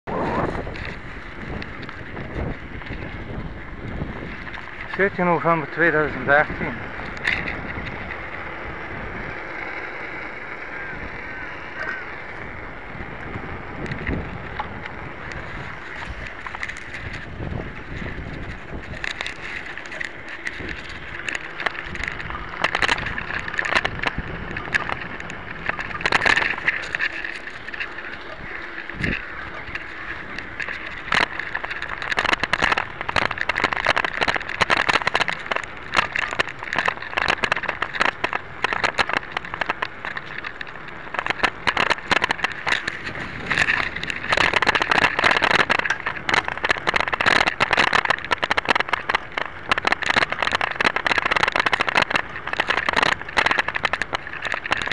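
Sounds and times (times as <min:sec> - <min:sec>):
bike rattling over bumps: 0:00.0 - 0:54.9
tyre and wind noise: 0:00.0 - 0:54.9.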